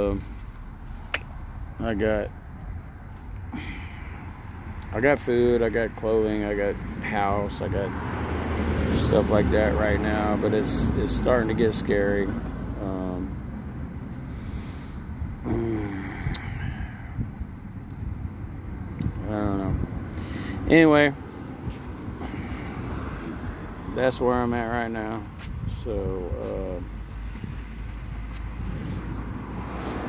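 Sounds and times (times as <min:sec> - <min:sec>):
low rumble of outdoor noise: 0:00.0 - 0:30.0.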